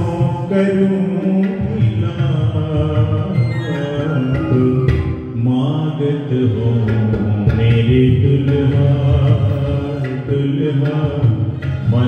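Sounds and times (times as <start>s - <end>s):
harmonium: 0.0s - 12.0s
man singing devotional song: 0.0s - 12.0s
tabla drumming: 0.0s - 12.0s.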